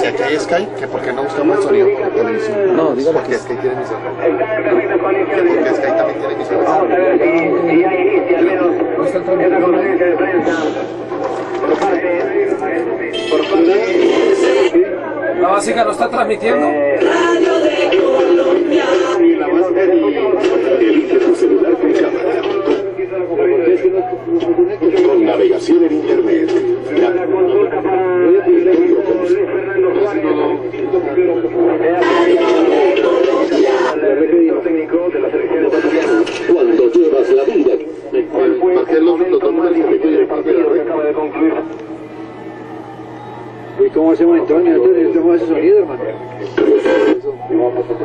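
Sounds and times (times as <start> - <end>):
muffled radio voices: 0.0 - 48.0.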